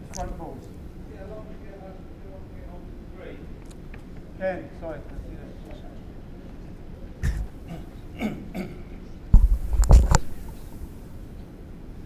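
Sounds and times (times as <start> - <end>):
loud cough-like burst: 7.2 - 9.0
person clearing throat: 7.2 - 9.0.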